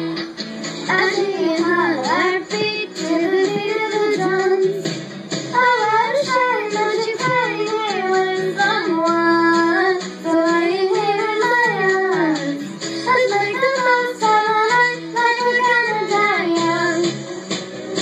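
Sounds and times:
instrumental backing track: 0.0s - 18.0s
girl singing into a microphone: 0.8s - 4.8s, 5.5s - 17.1s.

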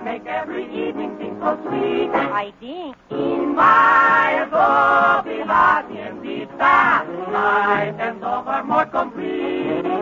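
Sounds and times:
group singing in harmony: 0.0s - 2.4s, 3.1s - 10.0s.

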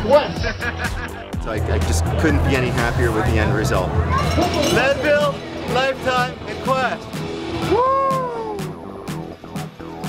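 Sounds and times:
background music with steady beat: 0.0s - 10.0s
man's excited whoop: 7.6s - 8.8s.

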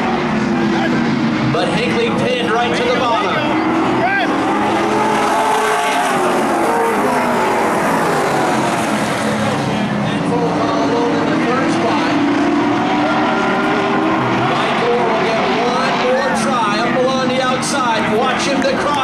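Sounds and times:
racing car engines: 0.0s - 19.0s.

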